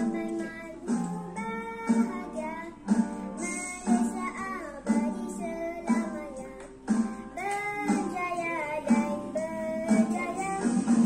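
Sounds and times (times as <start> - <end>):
backing music with strong beat: 0.0 - 11.0.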